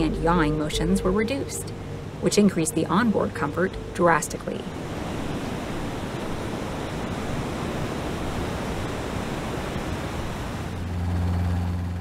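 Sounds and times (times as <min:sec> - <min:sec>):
sea noise: 0:00.0 - 0:11.8
low steady hum: 0:00.0 - 0:12.0.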